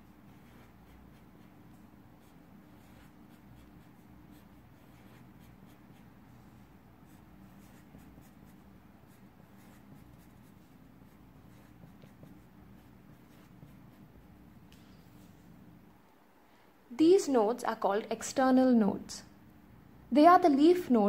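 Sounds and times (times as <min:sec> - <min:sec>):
marker pen scratching on paper: 0:00.0 - 0:15.6
low steady hum: 0:00.0 - 0:21.0.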